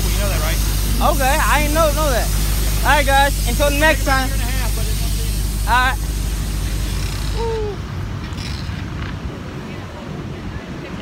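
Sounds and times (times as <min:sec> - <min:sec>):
steady hiss: 0:00.0 - 0:08.6
low traffic rumble: 0:00.0 - 0:11.0.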